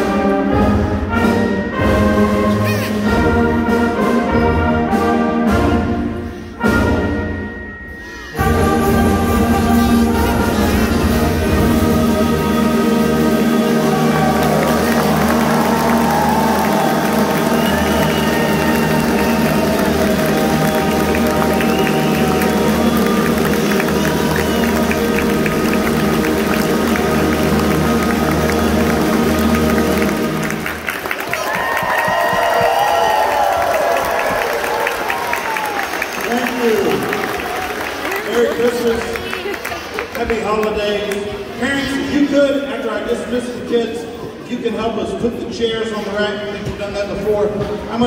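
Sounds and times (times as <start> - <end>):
concert band sustained chords: 0.0 - 31.1
audience applause: 12.3 - 42.0.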